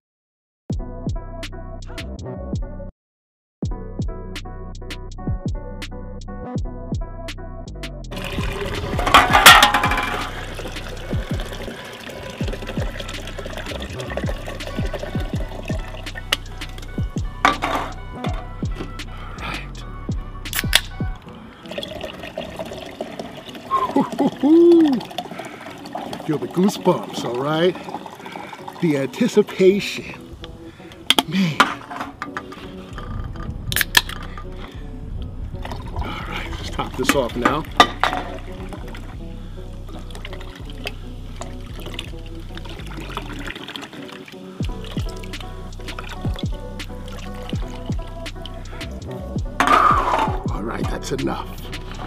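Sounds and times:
hip-hop beat: 3.7s - 21.5s, 44.1s - 52.0s
carbonated water pouring and fizzing: 8.2s - 18.0s, 21.6s - 30.0s, 39.9s - 48.1s.

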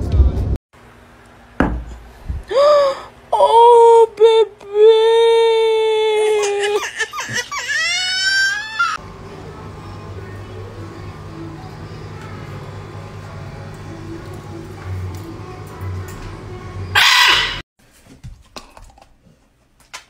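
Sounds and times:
parrot squawking: 6.5s - 9.0s, 16.9s - 17.6s.

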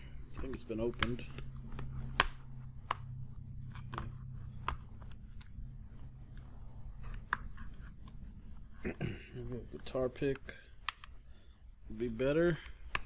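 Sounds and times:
low hum: 0.0s - 9.8s
plastic tablet clicks and taps: 0.9s - 6.5s.

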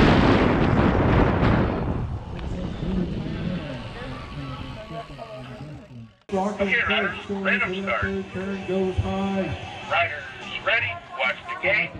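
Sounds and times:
indistinct chatter of voices: 2.2s - 11.9s.

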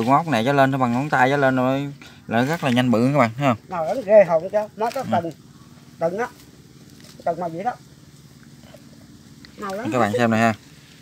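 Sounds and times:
low steady background hum: 0.0s - 11.0s.

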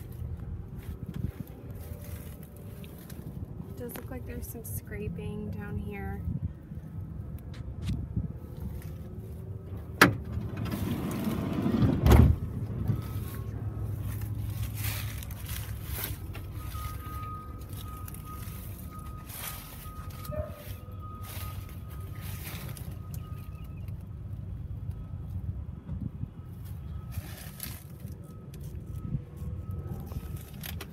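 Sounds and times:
low rumble: 6.2s - 30.7s
van door slamming: 9.9s - 12.9s
footsteps: 12.7s - 23.2s.

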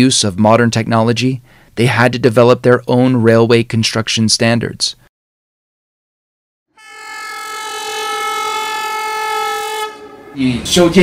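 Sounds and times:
train whistle: 6.7s - 10.7s.

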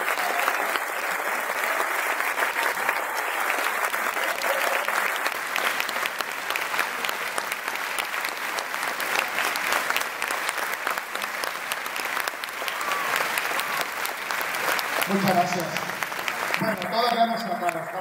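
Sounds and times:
audience applauding: 0.0s - 18.0s.

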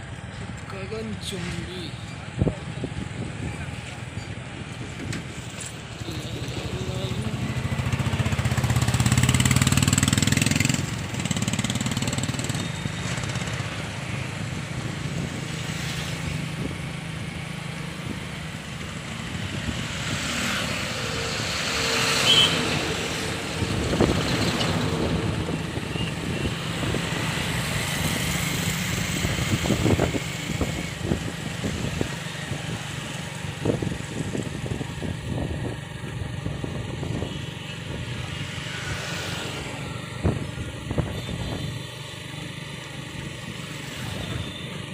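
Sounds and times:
motorcycle engine and traffic rumble: 0.0s - 44.9s
other motorcycles nearby: 0.0s - 44.9s
heavy truck passing: 5.0s - 41.7s.

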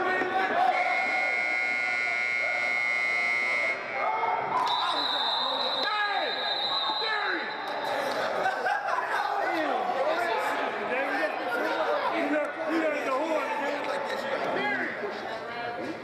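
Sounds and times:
voices shouting and talking: 0.0s - 16.0s.

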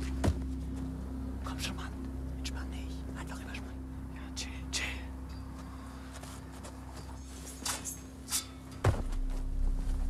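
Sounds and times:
footsteps in undergrowth: 0.0s - 1.0s, 5.5s - 8.1s
low rumble: 9.0s - 10.0s.

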